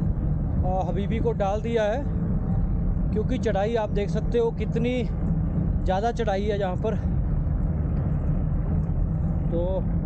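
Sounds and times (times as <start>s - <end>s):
road noise: 0.0s - 10.0s
wind rumble: 0.0s - 10.0s.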